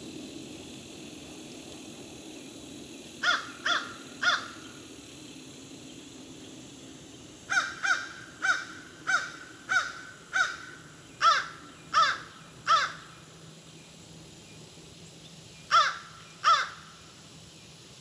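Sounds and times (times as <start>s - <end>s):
bird giving harsh calls: 3.2s - 4.8s, 7.5s - 13.2s, 15.7s - 17.0s.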